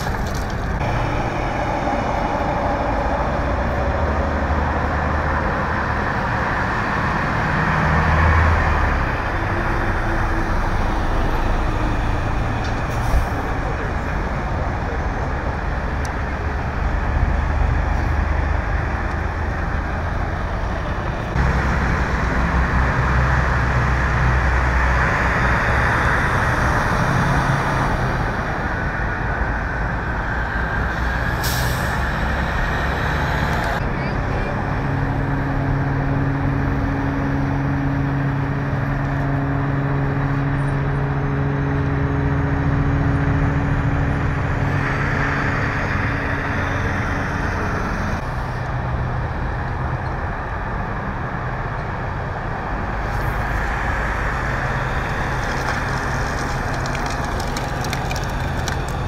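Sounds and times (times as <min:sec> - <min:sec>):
vehicle noise: 0:00.0 - 0:59.0.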